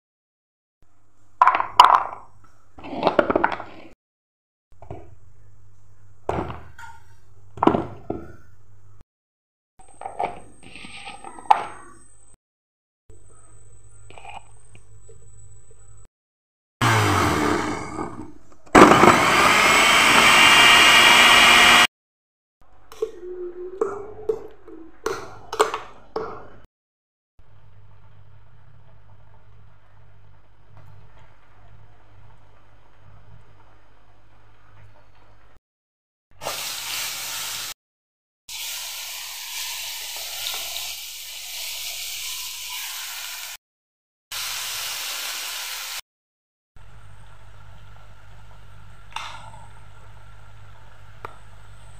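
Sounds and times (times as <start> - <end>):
mixer grinder whining: 16.8 - 21.9
paste sizzling in hot oil: 36.4 - 37.8, 38.5 - 43.6, 44.3 - 46.0.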